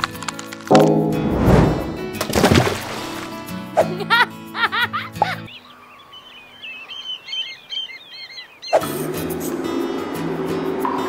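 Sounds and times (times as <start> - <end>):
birds chirping: 4.8 - 9.0.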